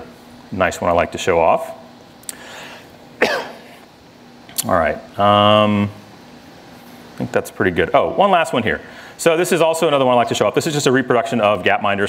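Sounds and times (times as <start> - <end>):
man coughing: 3.2 - 3.8.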